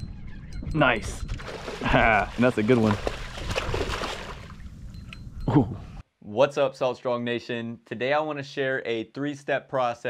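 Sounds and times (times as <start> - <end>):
fish splashing in water: 1.4 - 4.6.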